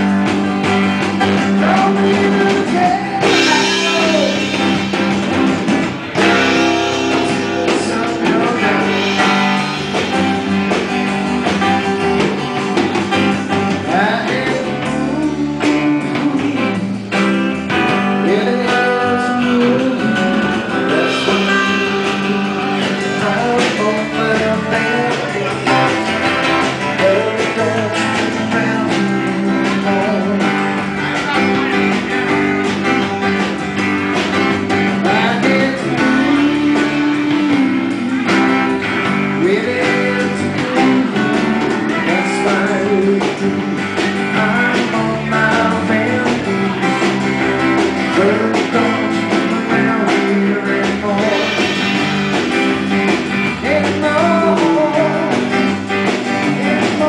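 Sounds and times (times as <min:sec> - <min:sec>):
acoustic guitars strummed: 0:00.0 - 0:57.0
drum kit beat: 0:00.0 - 0:57.0.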